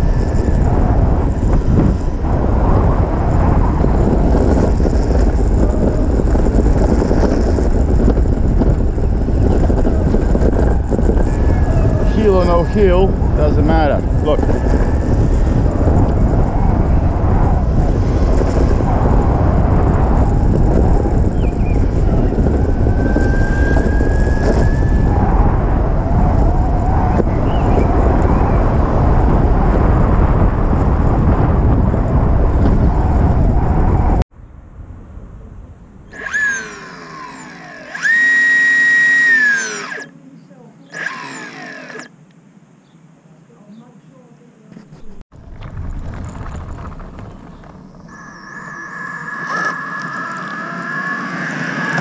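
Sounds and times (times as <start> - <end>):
electric motor whine: 0.0 - 34.0, 36.1 - 40.1, 40.9 - 42.1, 46.9 - 52.0
wind noise on microphone: 0.0 - 40.1, 40.9 - 42.1, 44.7 - 52.0
tyre rumble on tarmac: 45.3 - 48.1.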